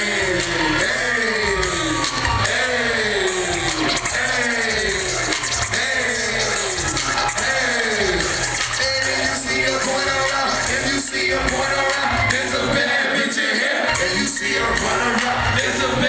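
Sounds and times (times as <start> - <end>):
hip hop beat over pa: 0.0 - 16.0.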